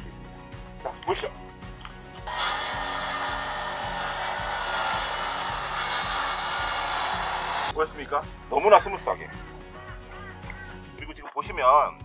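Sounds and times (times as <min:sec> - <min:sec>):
circular saw cutting wood: 0:02.2 - 0:07.8.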